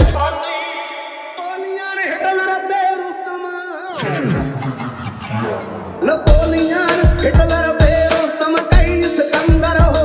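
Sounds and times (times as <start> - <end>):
heavy bass beat: 4.3 - 10.0
devotional song: 6.0 - 10.0.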